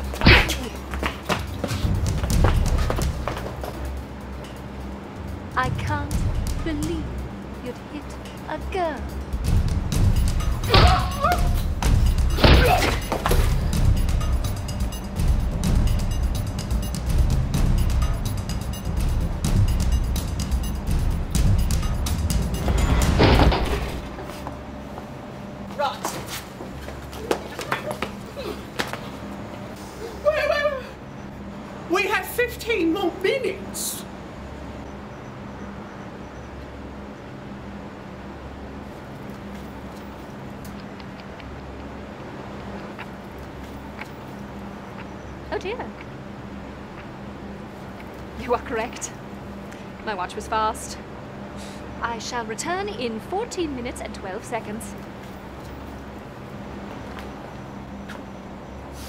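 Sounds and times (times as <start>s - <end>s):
background music: 0.0s - 24.8s
steady low hum: 0.0s - 25.8s
footsteps on wooden floorboards: 0.8s - 3.9s.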